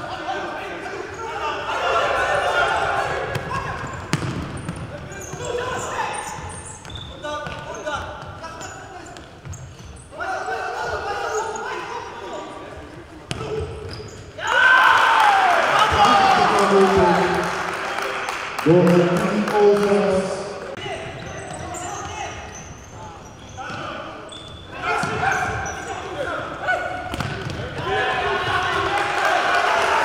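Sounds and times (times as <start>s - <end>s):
players shouting: 0.1s - 4.0s, 14.4s - 17.9s, 24.7s - 30.0s
ball strikes: 3.3s - 4.8s, 27.1s - 27.7s.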